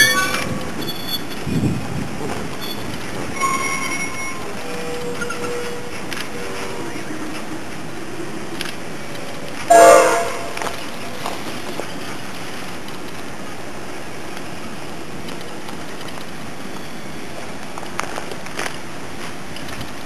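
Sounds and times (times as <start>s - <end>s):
wind noise on microphone: 0.0s - 6.8s
train rolling on rails: 0.0s - 20.0s
loud multi-tone sound: 9.7s - 10.8s.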